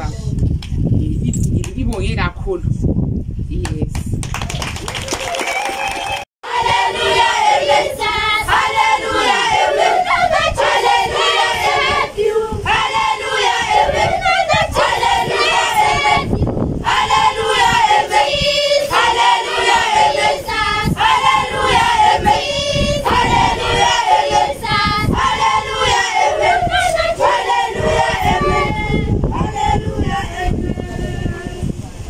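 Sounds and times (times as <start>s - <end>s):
children singing in chorus: 6.4s - 31.6s.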